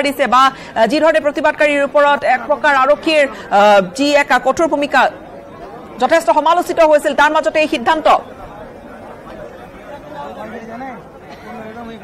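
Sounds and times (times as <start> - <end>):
murmur of crowd talking: 0.0 - 12.0.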